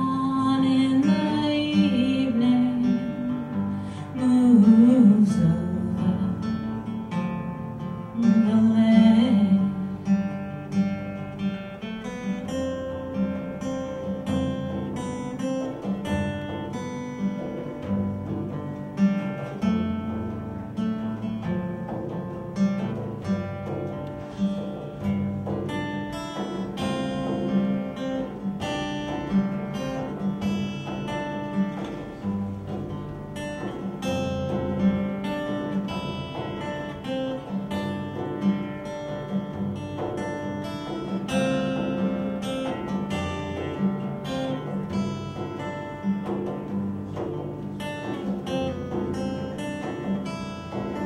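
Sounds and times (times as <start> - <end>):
acoustic guitar strummed and picked: 0.0 - 51.0
frame drum taps: 10.3 - 51.0.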